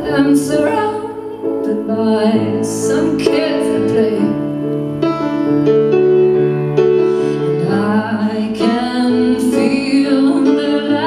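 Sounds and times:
woman singing: 0.0 - 4.6, 7.6 - 11.0
piano chords: 0.0 - 11.0.

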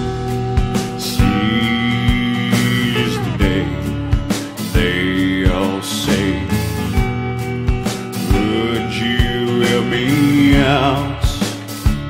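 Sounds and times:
folk-rock band music: 0.0 - 12.0.

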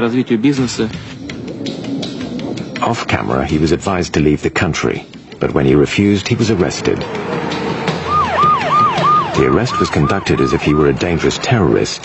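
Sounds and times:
voices: 0.0 - 12.0
siren yelping: 7.1 - 11.3.

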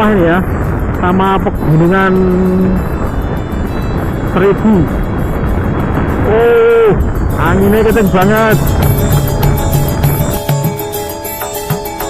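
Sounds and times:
motorcycle riding: 0.0 - 12.0
wind buffeting microphone: 0.0 - 12.0.

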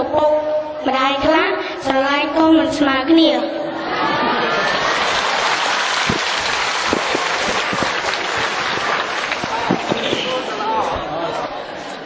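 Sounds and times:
crowd clapping: 4.5 - 10.7.

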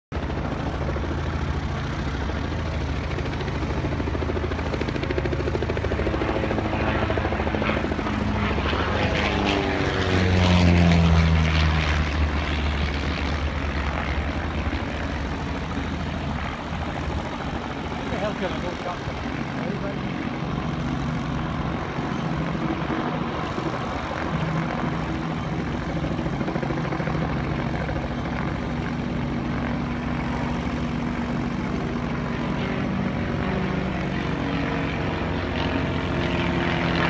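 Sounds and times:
biplane engine and propeller: 0.1 - 37.0.

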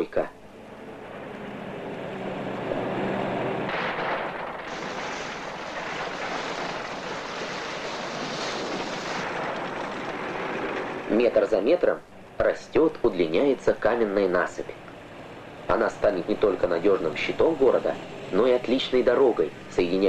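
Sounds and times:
faint engine hum: 0.0 - 4.6, 9.3 - 20.0
machinery rushing and rumbling: 0.0 - 20.0
rock load tipping into sea: 3.6 - 12.0.

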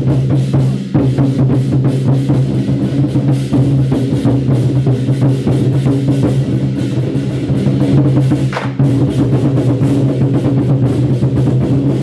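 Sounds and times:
large drums beaten fast: 0.0 - 12.0.

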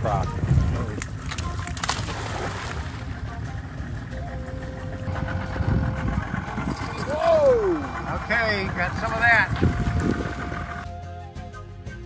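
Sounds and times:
wind on microphone: 0.0 - 10.9
boat motor idling: 0.1 - 11.0.

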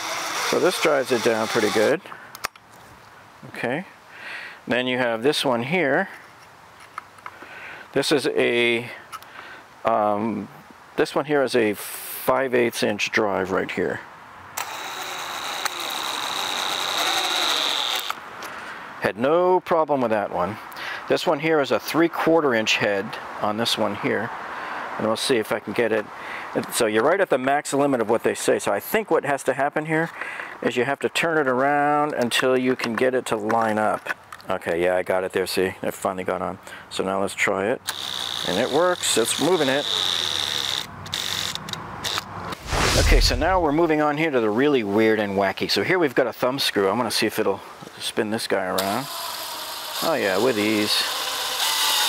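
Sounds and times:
cordless drill whining under load: 0.0 - 1.9, 14.6 - 18.2, 37.9 - 42.2, 48.8 - 52.0.

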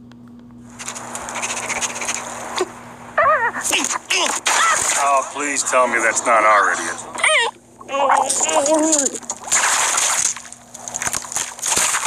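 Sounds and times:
low steady hum: 0.0 - 12.0
hissing rush of sound effects: 0.8 - 7.3
high cartoon character voice: 3.2 - 4.9, 7.2 - 9.2.

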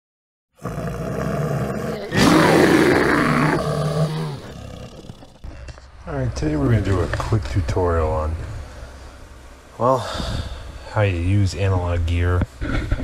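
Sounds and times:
bear growling and roaring: 0.6 - 5.8.

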